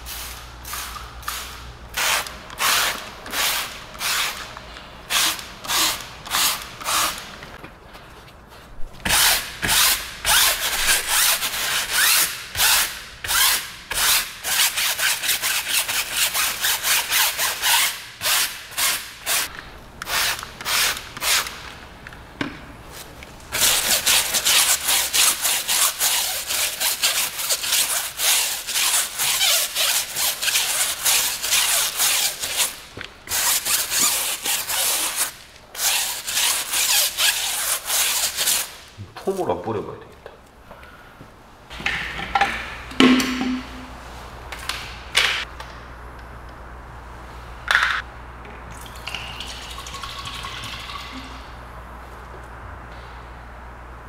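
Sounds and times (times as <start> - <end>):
brush scrubbing tyre: 23.6 - 32.7.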